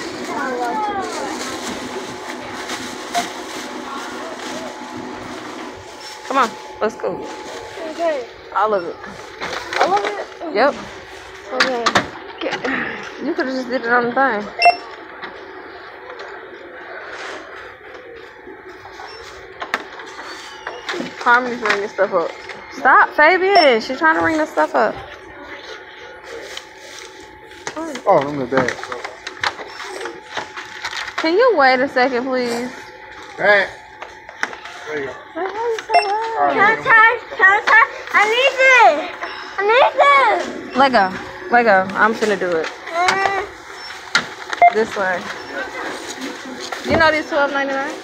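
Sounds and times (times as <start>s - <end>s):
faint indistinct voices: 0.0s - 48.0s
steady background hum: 0.0s - 48.0s
store background noise: 0.0s - 48.0s
checkout beep: 0.1s - 43.0s, 43.6s - 48.0s.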